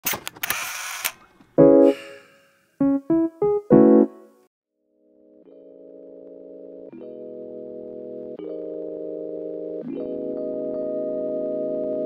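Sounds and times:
electric keyboard jingle: 1.6 - 4.5.

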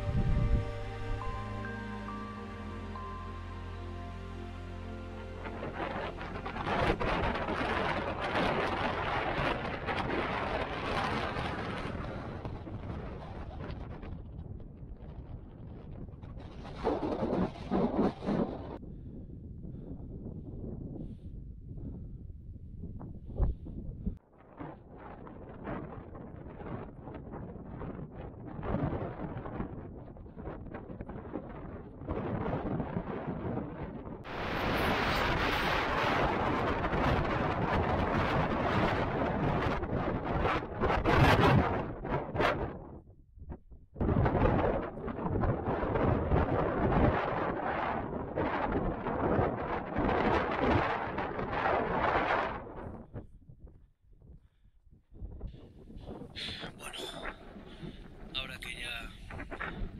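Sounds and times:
wind buffeting microphone: 0.0 - 2.1, 5.4 - 59.9.

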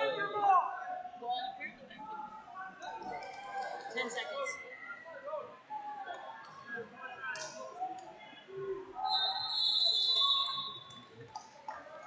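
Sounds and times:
voices in a hall: 0.0 - 12.0
referee's whistle blast: 9.1 - 10.9.

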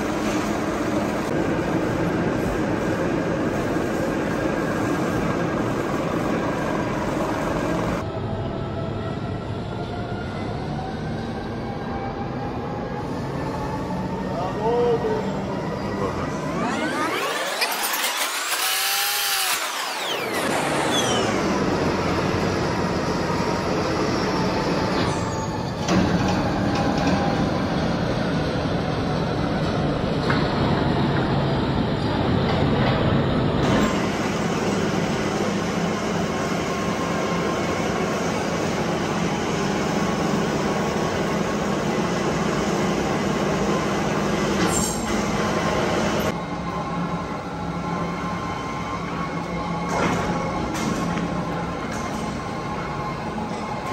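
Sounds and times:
sweeping tone: 13.4 - 25.6.

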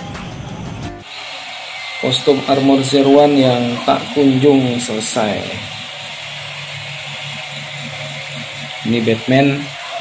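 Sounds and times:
even hiss: 1.0 - 10.0.

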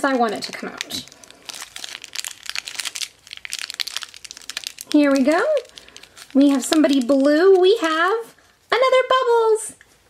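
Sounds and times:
plastic wrapper crackling: 0.1 - 8.3.

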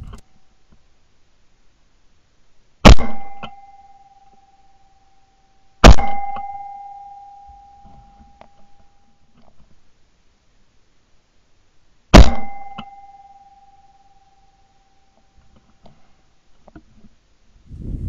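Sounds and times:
shotgun shots: 2.8 - 3.5, 5.8 - 6.4, 12.1 - 12.9
ringing tone: 3.2 - 9.3, 12.3 - 15.4.

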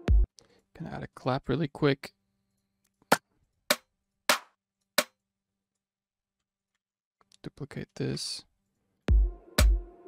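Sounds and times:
hand-clap hits: 3.1 - 5.1.

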